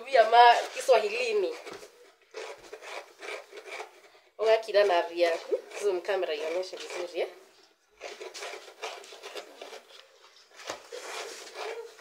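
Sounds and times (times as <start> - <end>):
coconut being grated by hand: 0.0 - 12.0.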